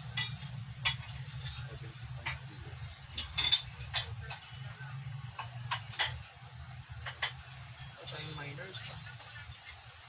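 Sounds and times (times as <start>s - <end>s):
ceramic tableware clinking: 0.0s - 4.8s, 5.4s - 6.3s, 6.9s - 9.8s.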